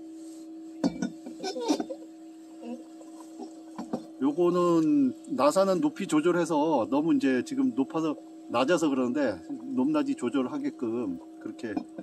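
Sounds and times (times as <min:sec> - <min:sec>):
small fan humming: 0:00.0 - 0:12.0.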